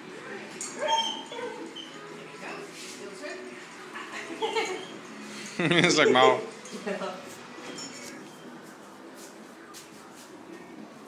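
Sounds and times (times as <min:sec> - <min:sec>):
small dog yipping and whining: 0:00.8 - 0:02.1.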